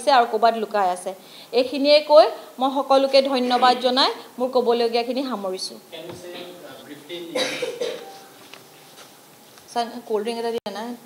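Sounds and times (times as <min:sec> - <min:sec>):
person coughing: 0:03.4 - 0:03.9, 0:07.3 - 0:08.1.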